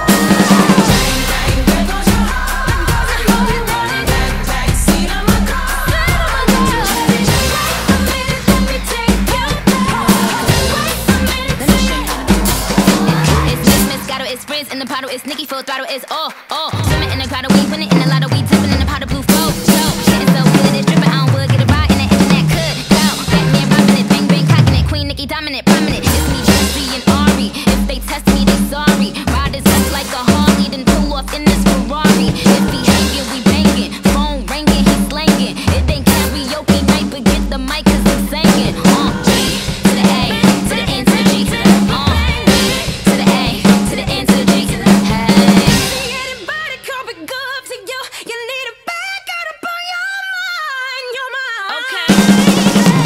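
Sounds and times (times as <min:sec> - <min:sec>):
stepping bass line: 0:00.0 - 0:14.3, 0:16.8 - 0:46.4, 0:52.1 - 0:53.0
drum kit playing a beat: 0:00.0 - 0:15.0, 0:16.7 - 0:47.0, 0:52.1 - 0:53.0
pop backing track: 0:00.0 - 0:48.6, 0:51.7 - 0:53.0
person rapping: 0:00.0 - 0:53.0.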